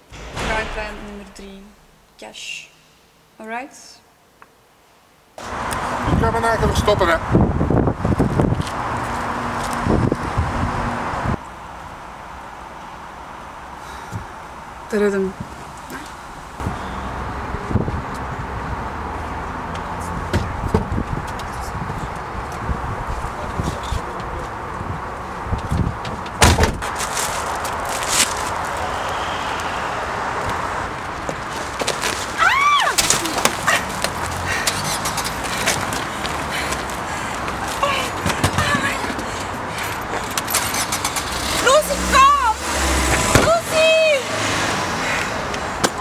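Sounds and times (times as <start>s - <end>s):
object striking car: 0.0s - 2.1s
van engine rumbling: 15.5s - 46.0s.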